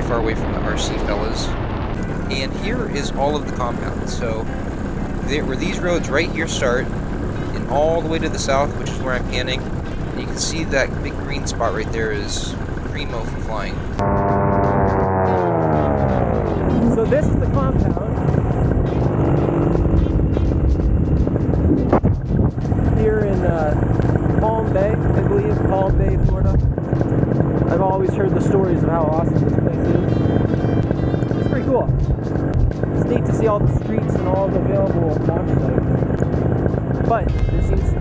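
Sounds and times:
paramotor engine drone: 0:00.0 - 0:38.0.

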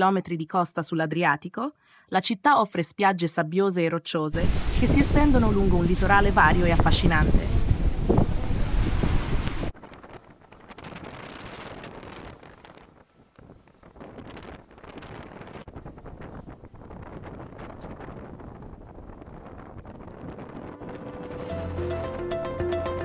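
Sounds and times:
wind buffeting microphone: 0:04.4 - 0:21.5
choppy sea water: 0:04.4 - 0:21.6.

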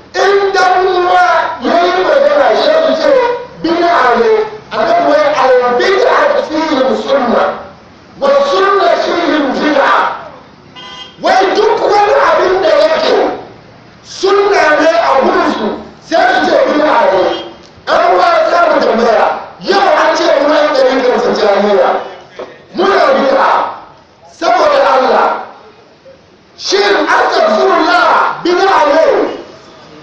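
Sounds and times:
man shouting: 0:00.0 - 0:10.4, 0:11.2 - 0:13.5, 0:14.1 - 0:25.6, 0:26.6 - 0:29.5.

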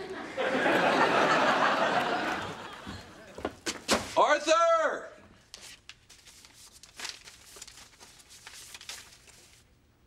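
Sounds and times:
paper bag rustling and crinkling: 0:05.5 - 0:09.7.

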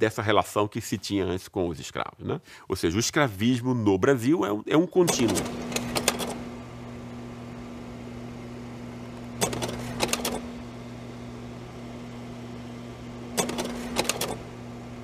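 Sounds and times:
rapid mechanical clicking: 0:09.4 - 0:10.4, 0:13.4 - 0:14.4.

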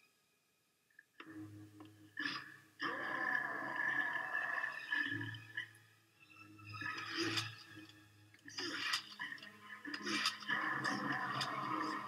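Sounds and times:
zombie throaty cry: 0:02.2 - 0:05.1, 0:10.0 - 0:12.0.

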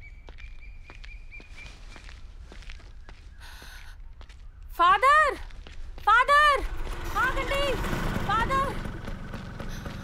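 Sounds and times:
footsteps on dirt path: 0:00.2 - 0:08.0, 0:08.8 - 0:10.0.

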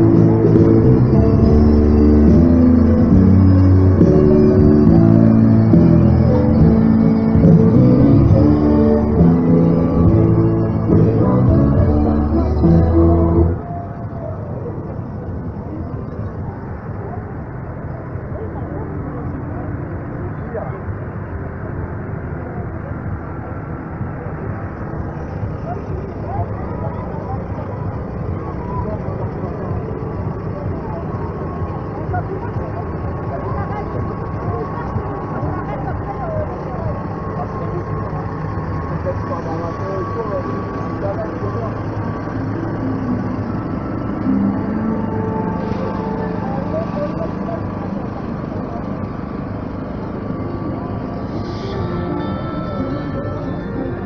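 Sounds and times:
people chatting: 0:00.0 - 0:54.0
tractor diesel engine running: 0:00.0 - 0:54.0.

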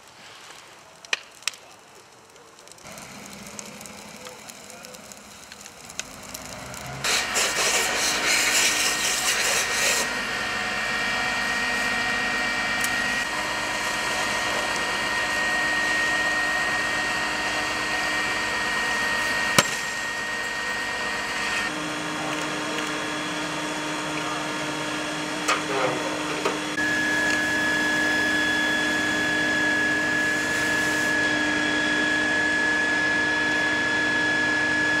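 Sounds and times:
hose spraying water: 0:00.0 - 0:21.7, 0:26.3 - 0:31.3
pump machine whine and hiss: 0:02.8 - 0:35.0.

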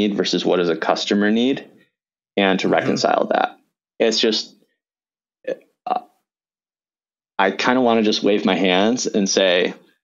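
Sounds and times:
man saying uh: 0:02.4 - 0:04.4.

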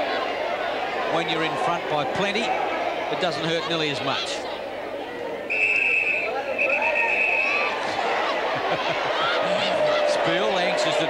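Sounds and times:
crowd murmuring and calling: 0:00.0 - 0:11.0
high whistle: 0:05.5 - 0:07.7.

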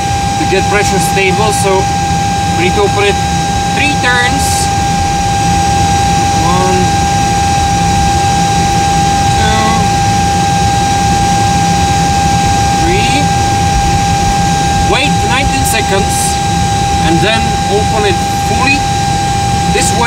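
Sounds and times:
aircraft machinery drone: 0:00.0 - 0:20.0
high whine: 0:00.0 - 0:20.0
voices: 0:00.3 - 0:05.0, 0:05.7 - 0:10.3, 0:12.6 - 0:13.6, 0:14.6 - 0:20.0.

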